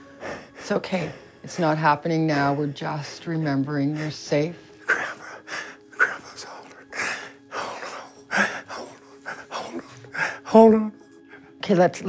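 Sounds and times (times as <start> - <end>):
man breathing heavily and gasping: 4.8 - 10.6.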